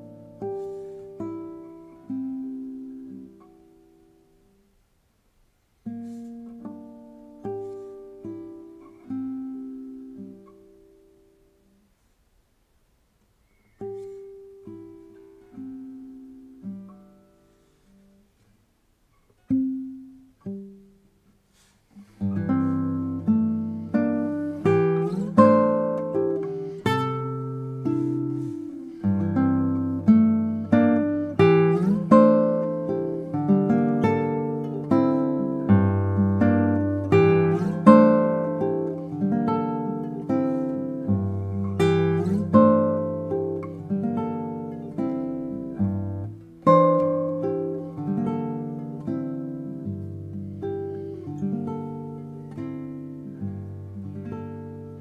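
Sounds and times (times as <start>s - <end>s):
solo classical guitar playing: 0.0s - 55.0s.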